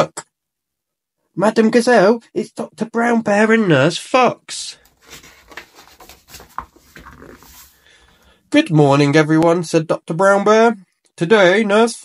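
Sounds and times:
book page turning: 4.8s - 7.8s.

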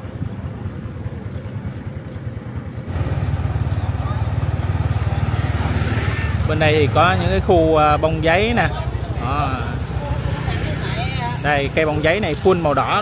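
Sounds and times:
motorbike engine running: 0.0s - 13.0s.

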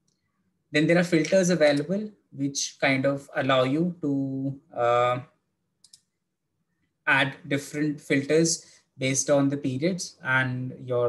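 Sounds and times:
man speaking: 0.8s - 5.3s, 7.1s - 11.0s.

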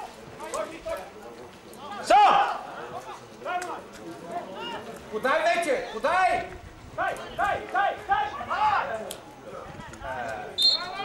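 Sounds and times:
referee's whistle blast: 10.6s - 11.0s.

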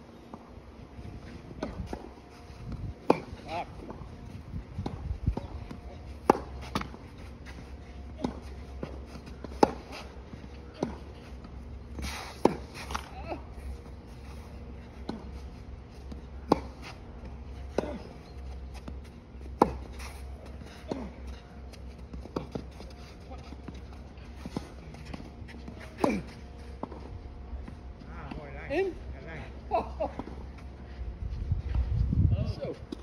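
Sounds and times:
shoes on court: 1.0s - 28.5s
tennis ball bouncing: 4.8s - 7.2s, 8.1s - 10.1s, 16.0s - 21.1s
racket striking tennis ball: 6.2s - 7.0s, 9.5s - 10.1s, 19.6s - 20.0s.

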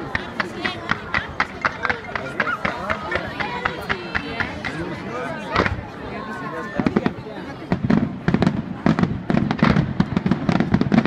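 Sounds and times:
people talking: 0.0s - 9.2s
fireworks bangs: 0.0s - 11.0s.

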